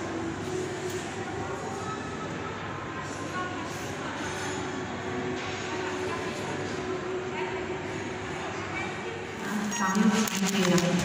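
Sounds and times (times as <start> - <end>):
shopping mall background noise: 0.0 - 11.0.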